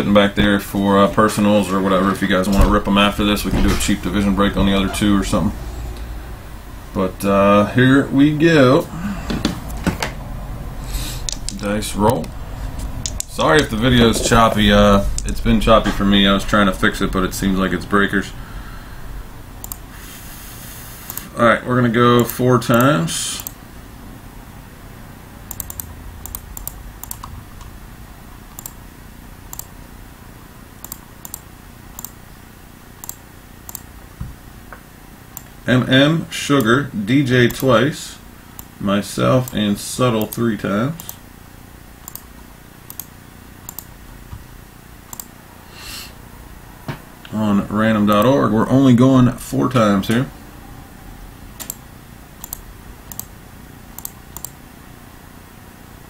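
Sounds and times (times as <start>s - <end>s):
low steady hum: 0.0s - 56.0s
keyboard and mouse clicks: 11.2s - 12.4s, 13.0s - 14.3s, 19.6s - 19.8s, 21.1s - 21.3s, 22.2s - 23.6s, 25.5s - 27.7s, 28.5s - 28.8s, 29.5s - 29.7s, 30.8s - 32.2s, 33.0s - 33.9s, 42.0s - 42.3s, 42.9s - 43.1s, 43.7s - 43.9s, 45.1s - 45.3s, 48.1s - 48.3s, 51.6s - 51.8s, 52.4s - 53.3s, 54.0s - 54.6s.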